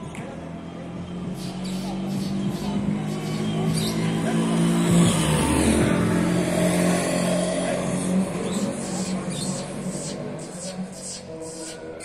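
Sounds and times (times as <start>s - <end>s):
car engine passing: 0.0s - 12.0s.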